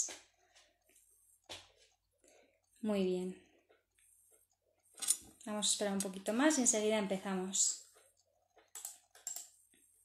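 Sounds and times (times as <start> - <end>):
typing on a keyboard: 8.6 - 9.5.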